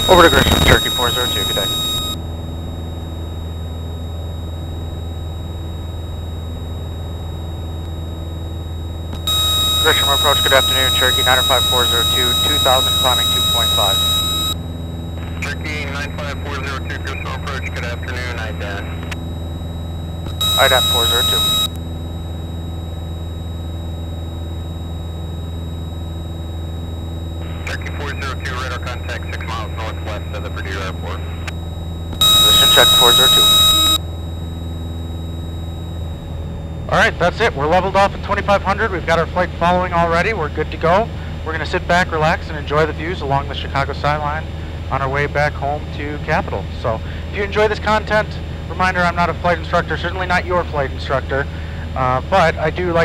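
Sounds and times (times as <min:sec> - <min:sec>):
pilot speaking: 0:00.0 - 0:02.2, 0:09.3 - 0:14.6, 0:15.2 - 0:19.2, 0:20.4 - 0:21.7, 0:27.4 - 0:31.5, 0:32.2 - 0:34.0, 0:36.9 - 0:53.0
radio voice: 0:00.0 - 0:02.2, 0:09.3 - 0:14.5, 0:15.2 - 0:19.2, 0:20.4 - 0:21.7, 0:27.4 - 0:31.5, 0:32.2 - 0:34.0
aircraft engine droning: 0:00.0 - 0:39.1.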